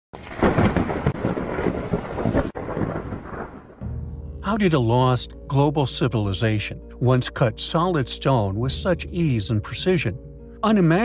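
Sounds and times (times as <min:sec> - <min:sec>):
rain: 0:00.2 - 0:03.8
thunder rumbling: 0:00.2 - 0:05.2
low music drone: 0:03.8 - 0:11.0.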